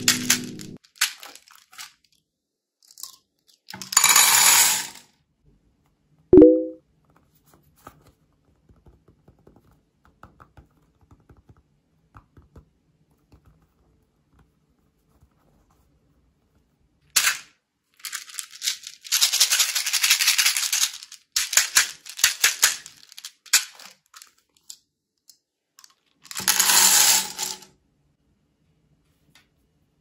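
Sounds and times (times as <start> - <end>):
beads pouring into metal tin: 0.0 - 1.9, 3.8 - 5.0, 18.0 - 23.9, 26.3 - 27.6
plastic beads rattling in bottle: 0.0 - 2.0, 18.0 - 24.4, 26.2 - 27.6.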